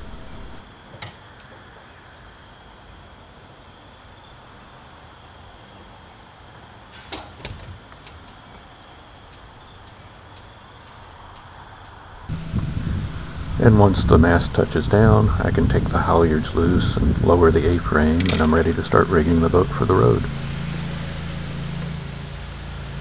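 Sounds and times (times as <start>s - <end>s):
outdoor background noise: 0.0s - 23.0s.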